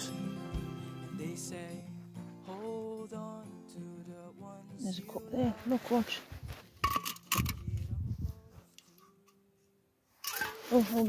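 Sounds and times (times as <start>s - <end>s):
metal can clicking on rock: 6.8s - 7.7s.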